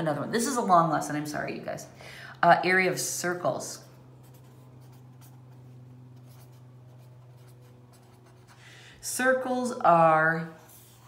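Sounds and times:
pen scratching on paper: 3.8 - 8.6, 10.6 - 11.0.

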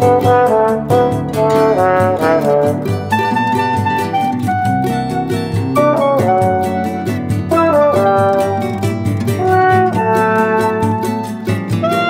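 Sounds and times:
jazzy instrumental music: 0.0 - 12.0.

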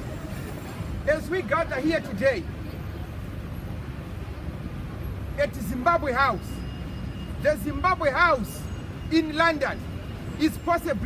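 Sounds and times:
city street rumble: 0.0 - 11.0.

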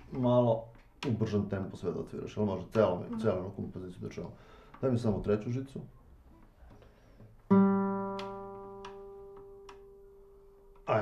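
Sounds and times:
guitar string plucked and ringing: 7.5 - 10.0.

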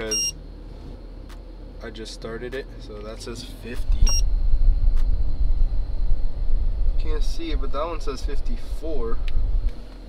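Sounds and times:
short high-pitched beep: 0.0 - 0.4, 4.0 - 4.3
air rumble buffeting microphone: 0.4 - 10.0.

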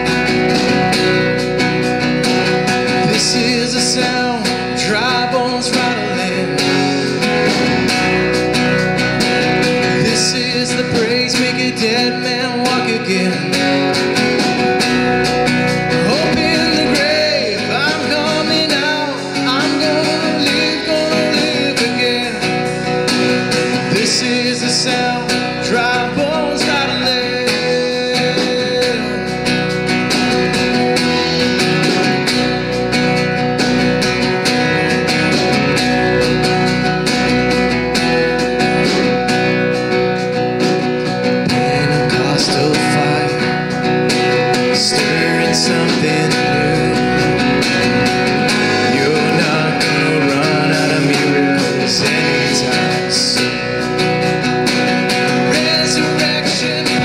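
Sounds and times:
drum kit: 0.0 - 57.0
electric bass: 0.0 - 57.0
strummed acoustic guitar: 0.0 - 57.0
man singing lead: 2.8 - 7.8, 9.6 - 15.2, 15.8 - 32.6, 40.8 - 57.0.

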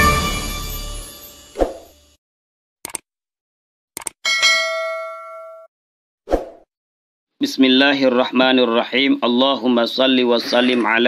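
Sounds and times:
bell ding: 4.2 - 5.7.

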